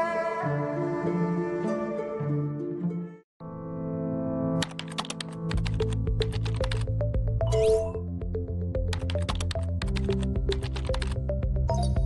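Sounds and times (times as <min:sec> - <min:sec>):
rapid typing key clicks: 0:04.6 - 0:06.9, 0:08.9 - 0:11.2.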